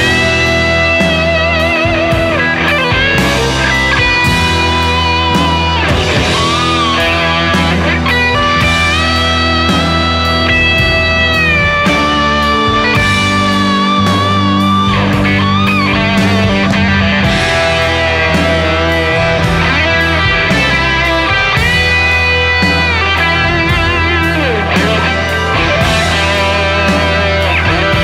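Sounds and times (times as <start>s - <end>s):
bass: 0.0s - 28.0s
drums: 0.0s - 28.0s
electric guitar lead with bends: 0.0s - 28.0s.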